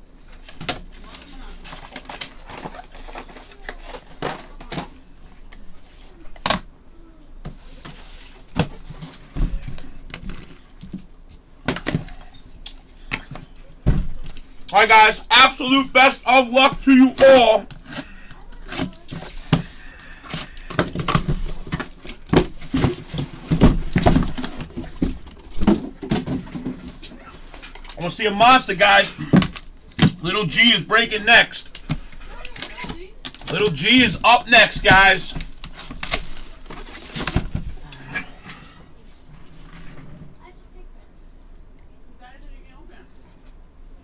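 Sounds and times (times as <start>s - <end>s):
cardboard boxes knocking and rustling: 18.7s - 27.2s, 34.8s - 37.8s.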